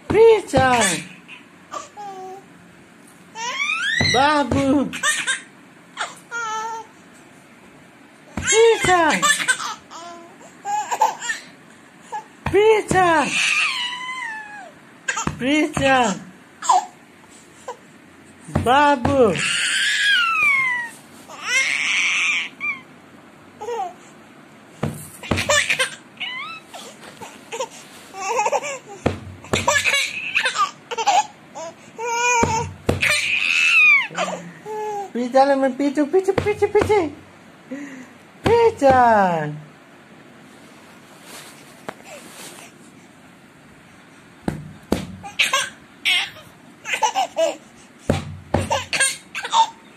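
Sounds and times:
baby giggling: 0.6 - 2.2, 8.4 - 11.5, 45.2 - 47.6, 48.6 - 49.8
baby laughing: 0.6 - 2.4, 3.4 - 6.8, 8.4 - 11.5, 25.3 - 26.6, 27.5 - 35.1, 45.2 - 47.6, 48.6 - 49.9
sharp knocks: 18.5 - 19.4, 24.8 - 25.8, 29.0 - 29.9, 32.4 - 33.3, 36.4 - 37.2, 44.4 - 45.4, 48.1 - 49.0.

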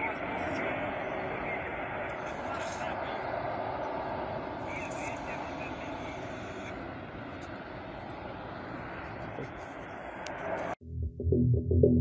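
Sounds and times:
faint voices: 0.0 - 3.5, 4.5 - 6.8
fire rushing: 0.0 - 10.8.

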